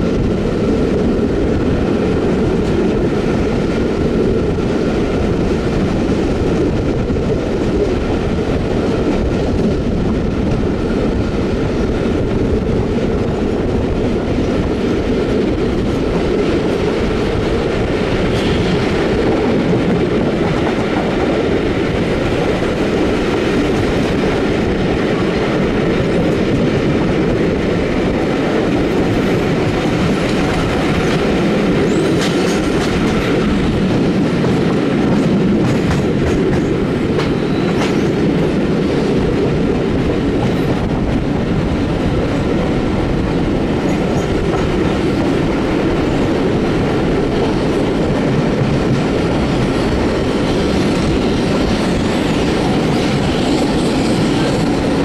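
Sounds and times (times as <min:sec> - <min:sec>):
train rolling rumble: 0:00.0 - 0:55.0.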